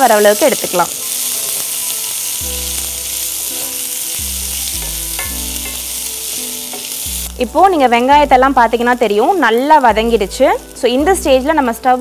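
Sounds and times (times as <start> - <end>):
soft background music: 0.0 - 12.0
vegetables sizzling in hot oil: 0.0 - 12.0.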